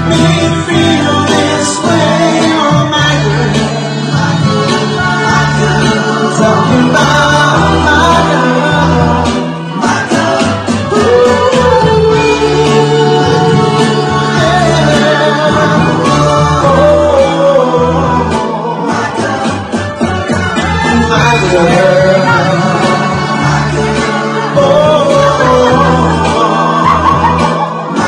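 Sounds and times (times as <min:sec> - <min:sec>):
instrumental backing with bass: 0:00.0 - 0:28.0
person singing: 0:00.0 - 0:28.0.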